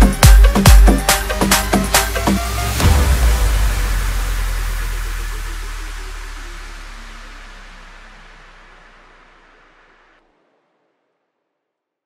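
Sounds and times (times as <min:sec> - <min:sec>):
electronic music hit: 0:00.0 - 0:09.3
deep bass note: 0:00.0 - 0:10.0.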